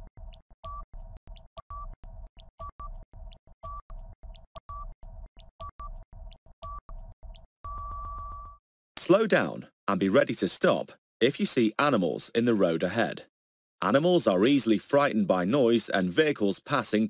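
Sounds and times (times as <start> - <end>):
rapid timer ticking: 0.0 - 8.6.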